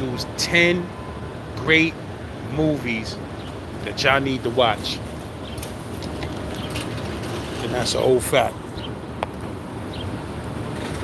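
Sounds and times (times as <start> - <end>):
city street rumble: 0.0 - 11.0.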